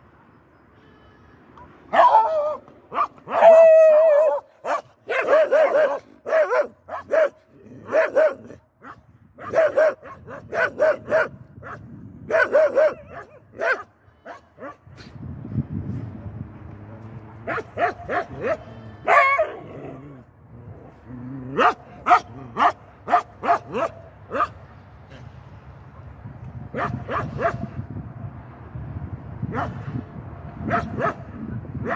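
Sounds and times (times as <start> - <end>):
dog barking: 1.9 - 14.8, 17.4 - 19.6, 21.6 - 24.6, 26.8 - 27.7, 30.7 - 31.2.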